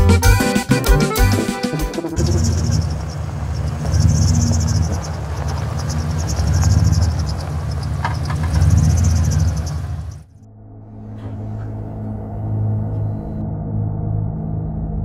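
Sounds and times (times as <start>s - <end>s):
truck engine rumbling: 0.0s - 10.3s, 10.9s - 13.4s
crickets trilling: 2.2s - 10.2s.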